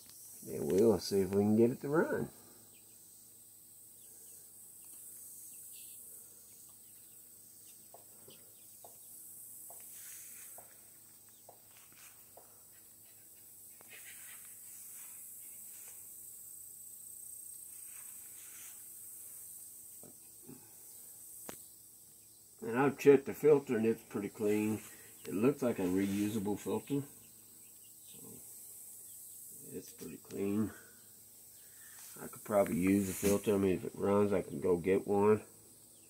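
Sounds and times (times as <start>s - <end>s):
steady high hiss: 0.0s - 36.0s.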